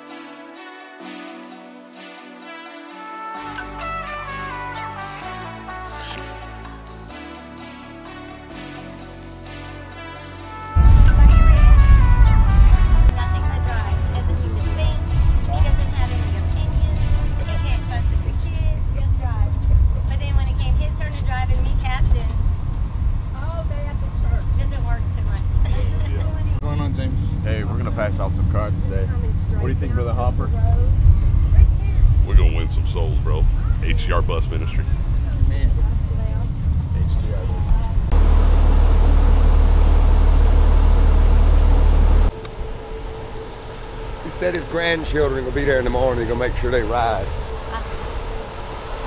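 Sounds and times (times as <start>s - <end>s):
bus engine and road noise: 10.7s - 49.0s.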